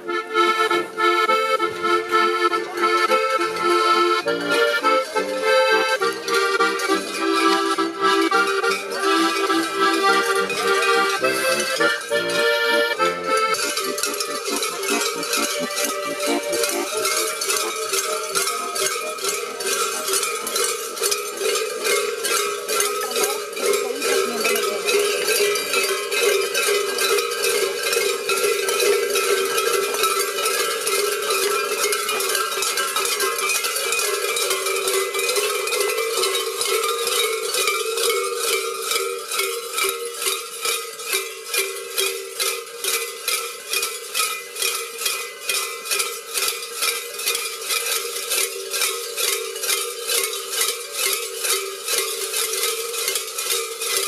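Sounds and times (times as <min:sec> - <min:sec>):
cowbells clanking with steps: 0:00.0 - 0:54.0.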